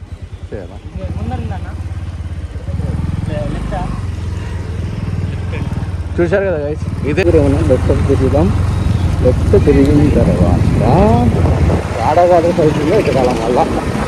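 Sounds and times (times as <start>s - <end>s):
motorcycle engine accelerating: 0.0s - 14.0s
voices: 0.0s - 14.0s.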